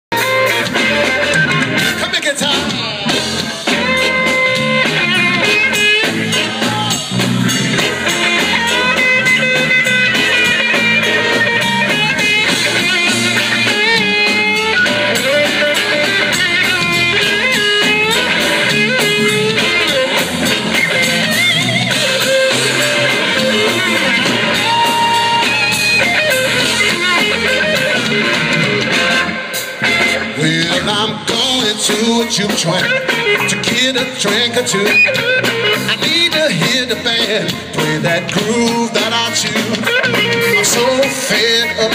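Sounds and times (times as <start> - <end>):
electric guitar solo: 0.1 - 31.2, 32.6 - 36.3, 39.3 - 41.9
blues band playing: 0.1 - 41.9.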